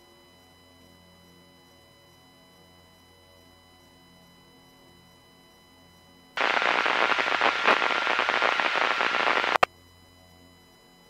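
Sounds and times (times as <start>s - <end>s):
click: 6.4s - 9.7s
loud crackling static: 6.4s - 9.7s.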